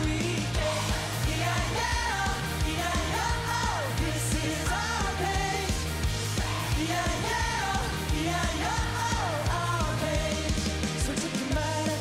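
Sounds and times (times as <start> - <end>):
man singing: 0.0 - 5.8, 6.7 - 12.0
pop-rock band playing: 0.0 - 12.0.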